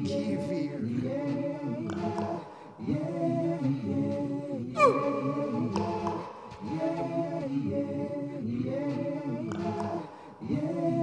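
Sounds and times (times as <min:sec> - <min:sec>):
layered hummed vocal loops: 0:00.0 - 0:11.0.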